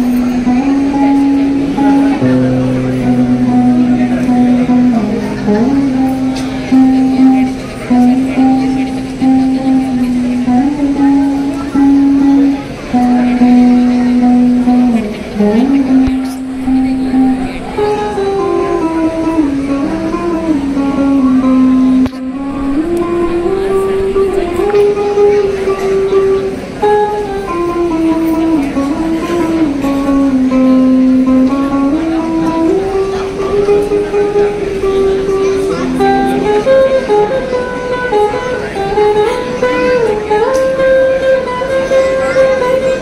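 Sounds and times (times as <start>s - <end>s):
lap guitar sustained note: 0.0s - 43.0s
ukulele: 0.0s - 43.0s.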